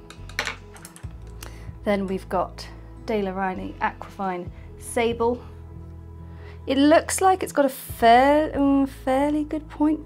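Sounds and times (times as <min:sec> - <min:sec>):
quiet background music: 0:00.0 - 0:10.0
paintbrushes tapping on wooden table: 0:00.1 - 0:01.1.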